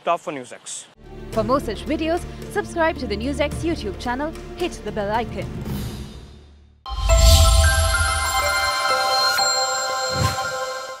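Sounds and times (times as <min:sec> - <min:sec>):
synthesized chime tones: 0:06.9 - 0:11.0.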